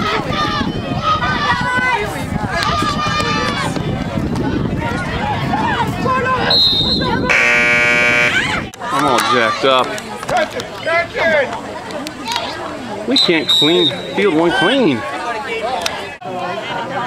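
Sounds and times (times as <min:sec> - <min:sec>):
spectators shouting and cheering: 0:00.0 - 0:17.0
loud buzzing horn: 0:07.3 - 0:08.6.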